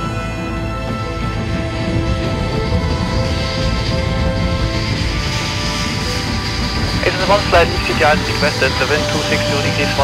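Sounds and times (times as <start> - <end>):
high jet engine whine: 0.0 - 10.0
jet engines rushing: 0.0 - 10.0.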